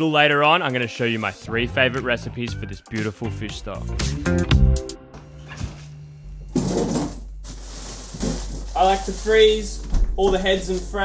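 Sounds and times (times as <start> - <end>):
rattling scrape in freezer: 6.5 - 9.8.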